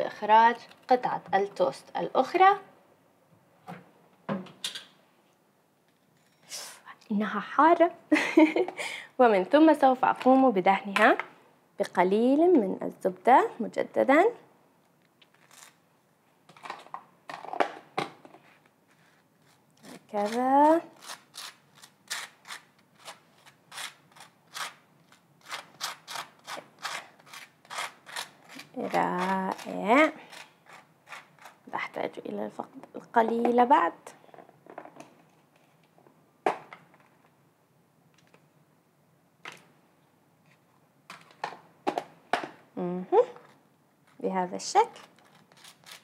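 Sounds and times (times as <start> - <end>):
knife scraping butter on toast: 25.4 - 31.6.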